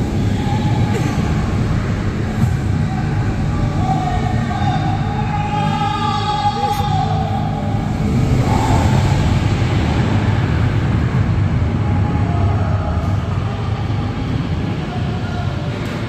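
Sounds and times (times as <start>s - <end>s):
roller coaster train rumbling: 0.0s - 16.0s.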